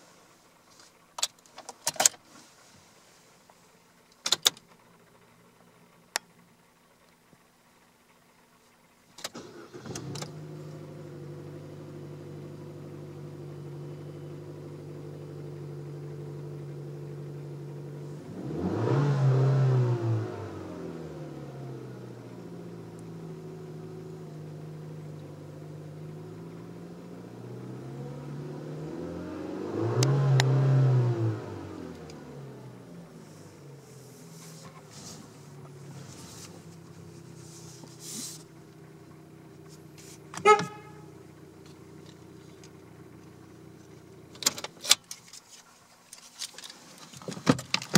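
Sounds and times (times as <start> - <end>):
car engine starting and idling: 0.0 - 47.9
car engine revving: 9.4 - 44.5.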